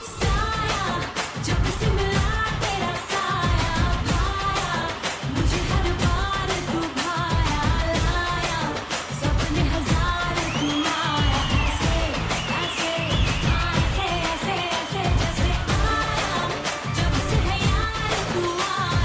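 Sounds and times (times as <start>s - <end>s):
heavy dance beat: 0.0s - 19.0s
person singing: 0.0s - 19.0s.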